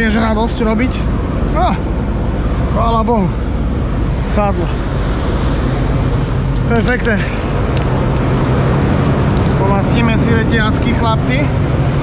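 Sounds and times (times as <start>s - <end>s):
combine harvester engine idling: 0.0s - 12.0s.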